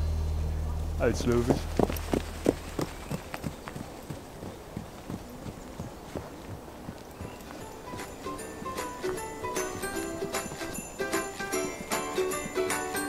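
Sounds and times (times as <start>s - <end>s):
hooves on sandy path: 1.0s - 13.0s
footsteps on leafy path: 1.3s - 13.0s.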